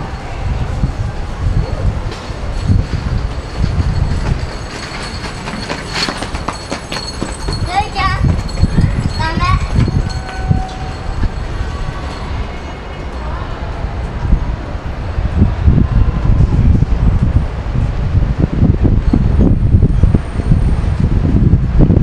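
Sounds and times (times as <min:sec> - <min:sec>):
voices of passers-by: 0:00.0 - 0:21.0
traffic rumble: 0:00.0 - 0:22.0
wind: 0:00.0 - 0:22.0
high wavering voices: 0:06.9 - 0:14.8.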